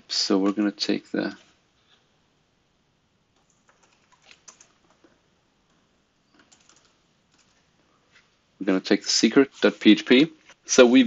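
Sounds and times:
computer keyboard keystrokes: 0:03.4 - 0:05.1, 0:06.4 - 0:07.6.

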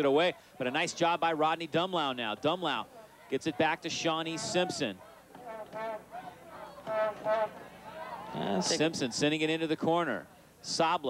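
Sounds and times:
distant high-pitched shouts: 0:04.3 - 0:08.8.

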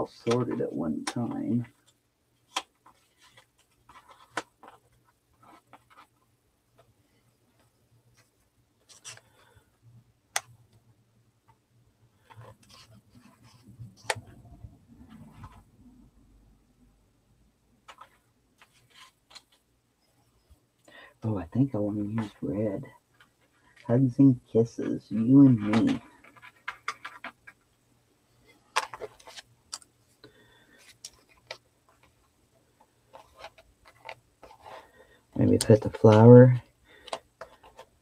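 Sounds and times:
paper rustling: 0:28.5 - 0:32.2, 0:32.8 - 0:38.0.

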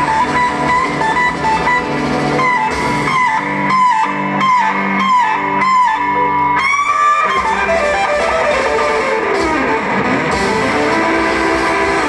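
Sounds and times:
electric guitar bending high note: 0:00.0 - 0:12.0
live rock band playing: 0:00.0 - 0:12.0.

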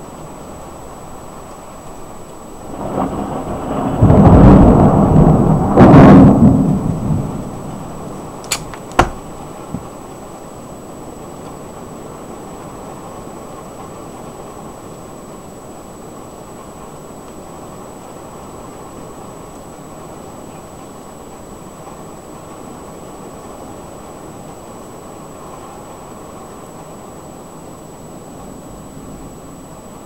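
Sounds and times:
thunder rumbling: 0:02.6 - 0:10.2
sharp clicks: 0:08.4 - 0:09.3.

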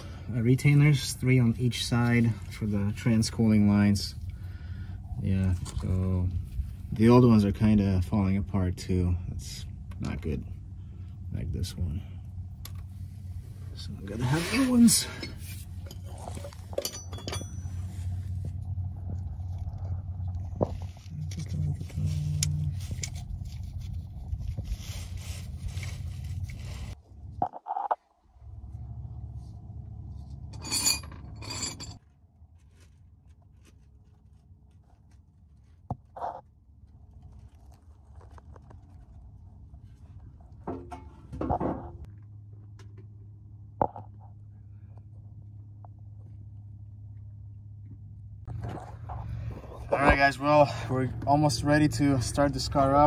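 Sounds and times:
steady low hum: 0:00.0 - 0:53.0
hand tools and metal clinking: 0:14.1 - 0:18.6, 0:30.2 - 0:32.0.

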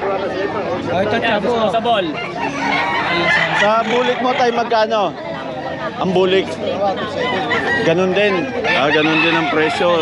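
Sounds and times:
people talking: 0:00.0 - 0:10.0
roosters crowing: 0:02.2 - 0:05.0, 0:07.1 - 0:10.0.

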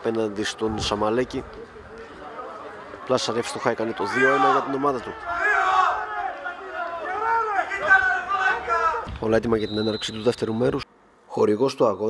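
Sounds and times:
men shouting loudly: 0:03.5 - 0:09.1.

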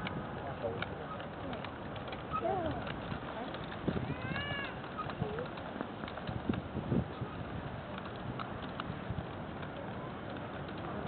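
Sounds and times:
tricycle wheels rattling on pavement: 0:00.0 - 0:11.0.

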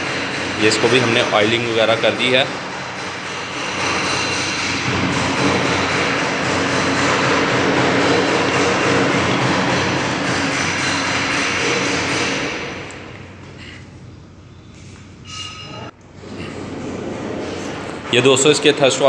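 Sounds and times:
loud machine noise: 0:00.0 - 0:13.2.

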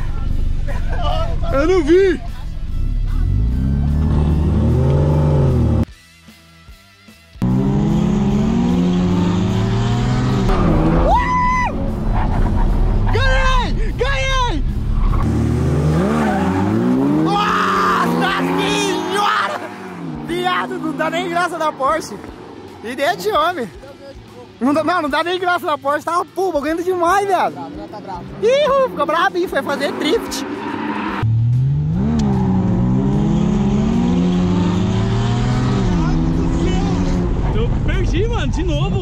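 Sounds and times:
sports car engine accelerating: 0:02.3 - 0:05.9, 0:07.4 - 0:13.2, 0:14.6 - 0:23.9, 0:27.6 - 0:38.0.

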